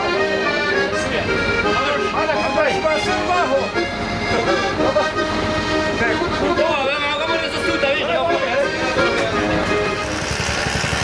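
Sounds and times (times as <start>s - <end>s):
button accordion sustained notes: 0.0s - 11.0s
people's voices: 0.0s - 11.0s.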